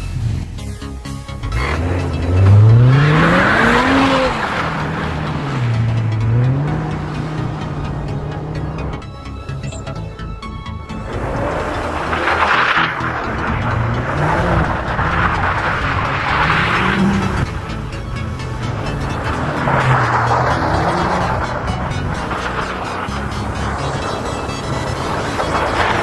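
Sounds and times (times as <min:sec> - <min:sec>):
car engine revving: 0:00.0 - 0:26.0
music: 0:00.0 - 0:26.0
wheels spinning on snow: 0:01.4 - 0:09.1, 0:10.3 - 0:26.0.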